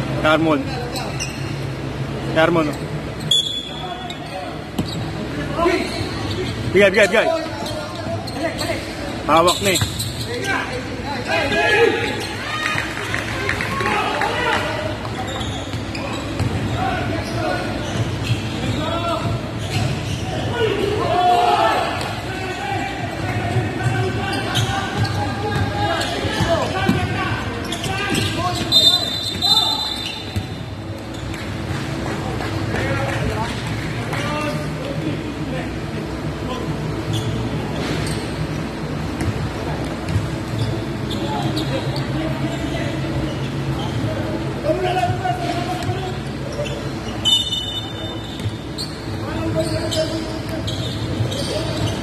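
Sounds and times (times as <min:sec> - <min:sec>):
basketball bouncing on court: 0:15.7 - 0:16.7, 0:40.0 - 0:40.4.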